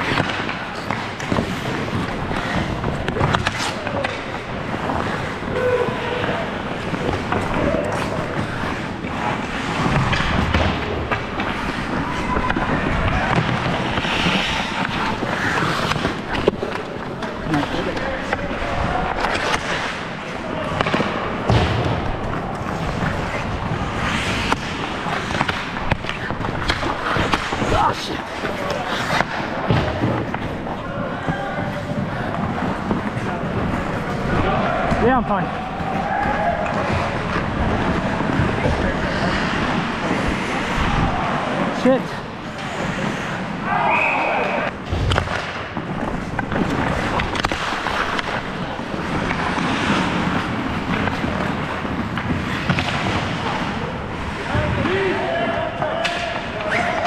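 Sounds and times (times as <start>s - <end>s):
hockey sticks and puck clacking: 0.0s - 57.0s
skate blades scraping ice: 0.0s - 57.0s.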